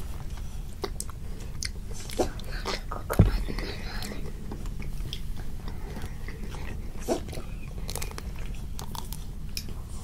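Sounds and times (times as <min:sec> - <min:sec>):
chewing and crunching ice cream bars: 0:00.2 - 0:10.0.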